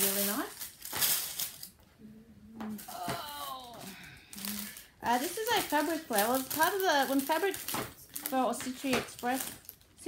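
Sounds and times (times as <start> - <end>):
fabric and packaging rustling: 0.0 - 1.9, 2.7 - 10.0
woman humming: 2.0 - 4.8.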